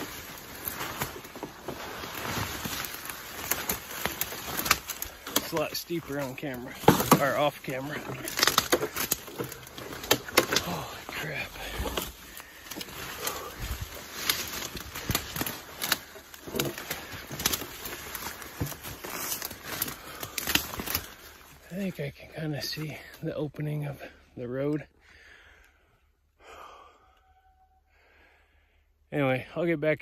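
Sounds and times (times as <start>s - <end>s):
footsteps crashing through brush: 0.0s - 21.6s
hard breathing: 8.3s - 21.6s, 24.0s - 29.1s.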